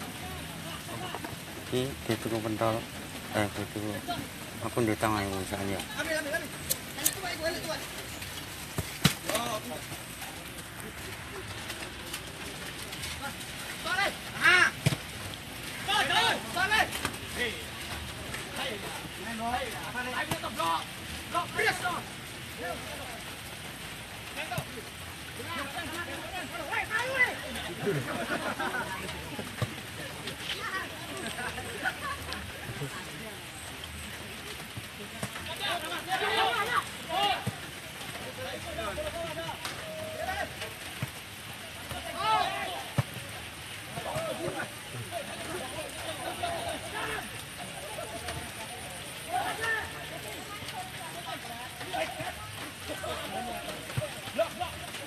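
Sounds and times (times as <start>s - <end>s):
footballers calling out: 0.0s - 55.0s
steady background hiss: 0.0s - 55.0s.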